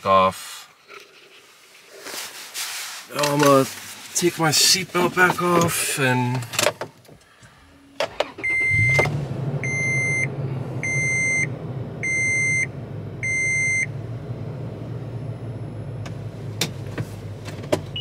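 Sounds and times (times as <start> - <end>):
car engine starting and idling: 3.2 - 18.0.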